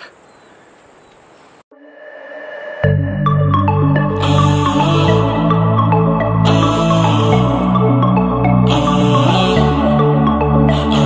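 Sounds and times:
faint open-air ambience: 0.0s - 2.8s
soft ambient electronic music: 1.7s - 11.0s.

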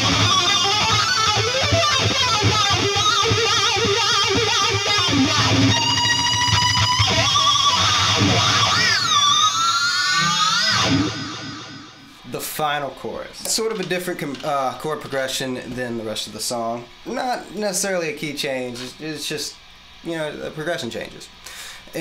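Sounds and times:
distorted electric guitar lead: 0.0s - 12.2s.

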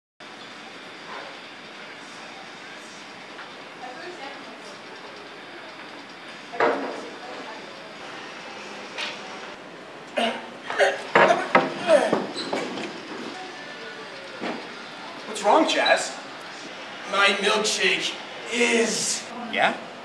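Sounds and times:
room hum: 0.2s - 20.0s
faint indistinct voices: 0.5s - 20.0s.

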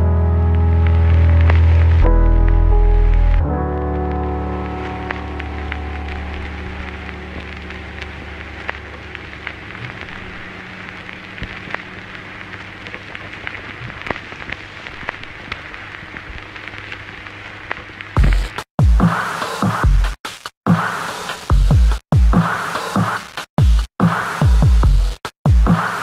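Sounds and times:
lo-fi electronic music: 0.0s - 14.3s, 18.2s - 20.1s
rain-like crackle: 0.0s - 18.7s.

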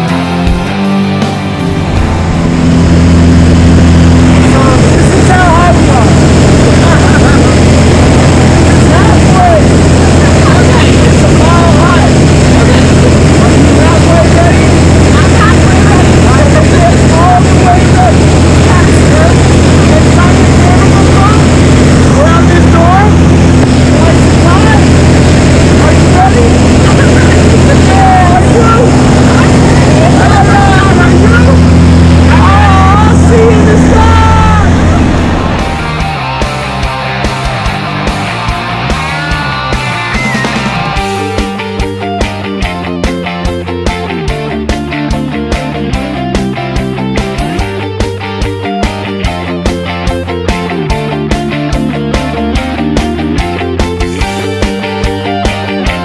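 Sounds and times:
propeller plane engine drone: 0.0s - 56.0s
people laughing: 6.6s - 9.4s, 12.5s - 17.9s.

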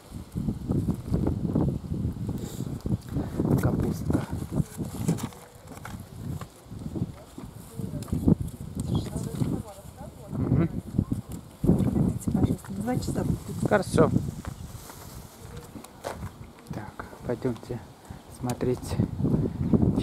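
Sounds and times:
gusty wind: 0.0s - 20.0s.

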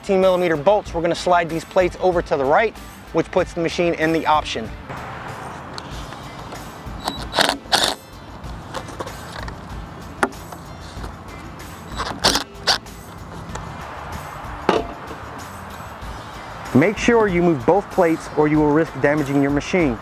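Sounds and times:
background music: 0.0s - 20.0s
cordless ratchet loosening bolts: 6.5s - 8.1s, 11.8s - 13.6s
ratchet clicks: 7.0s - 8.1s, 11.9s - 12.9s.

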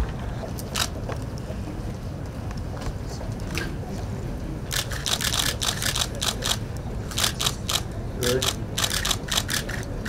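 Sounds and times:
low room rumble: 0.0s - 10.0s
camera shutters clicking: 0.7s - 0.9s, 4.7s - 7.8s, 8.4s - 9.9s.

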